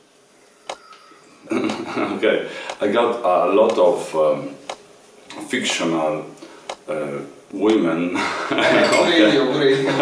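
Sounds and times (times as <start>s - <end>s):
people talking: 0.7s - 4.6s, 5.3s - 10.0s
people laughing: 1.5s - 2.2s, 8.2s - 10.0s
man speaking: 1.7s - 4.6s, 5.3s - 10.0s.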